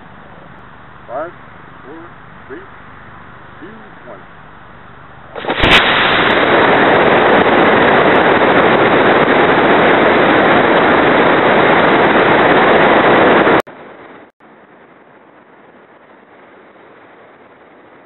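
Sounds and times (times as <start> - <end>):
faint rush of air: 0.0 - 18.0
rocket motor crackle: 0.0 - 18.0
rocket motor rushing burn: 1.1 - 13.6.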